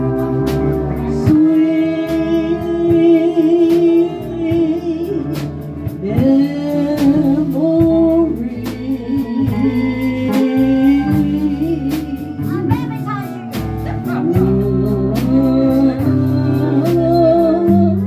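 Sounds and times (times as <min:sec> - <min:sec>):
drums keeping steady beat: 0:00.0 - 0:18.0
woman singing with vibrato: 0:00.0 - 0:18.0.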